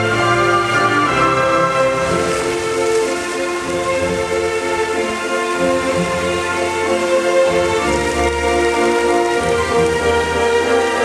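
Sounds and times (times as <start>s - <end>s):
fountain jets spraying: 0.0s - 11.0s
music with long held notes: 0.0s - 11.0s.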